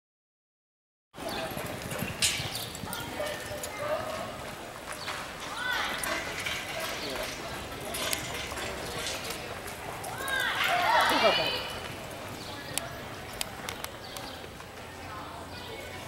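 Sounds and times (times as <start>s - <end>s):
horse hoofbeats on dirt: 1.2s - 14.8s.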